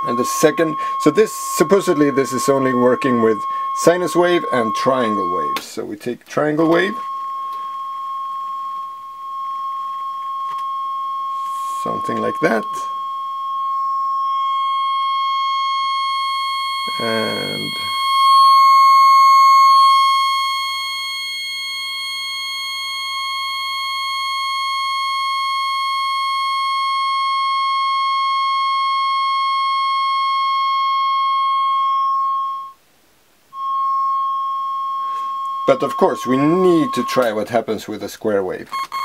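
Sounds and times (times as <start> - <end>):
steady synth tone: 0.0 - 5.6, 33.5 - 37.2.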